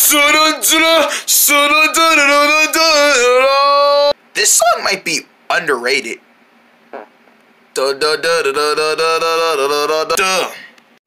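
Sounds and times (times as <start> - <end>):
person singing wordless tune: 0.0 - 4.2, 7.8 - 10.7.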